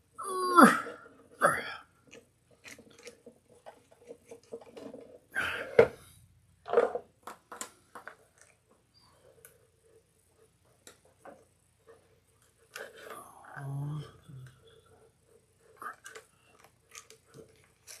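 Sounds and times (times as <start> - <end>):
cord rustling: 0.0 - 13.2, 14.1 - 18.0.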